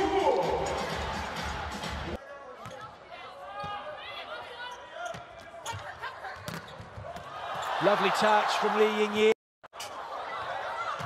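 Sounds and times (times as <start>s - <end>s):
arena crowd noise: 0.0s - 11.0s
shoes squeaking on court: 4.7s - 7.8s.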